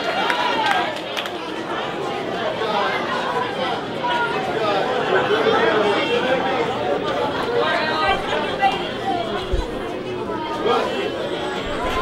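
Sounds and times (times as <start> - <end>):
audience chatter: 0.0 - 12.0.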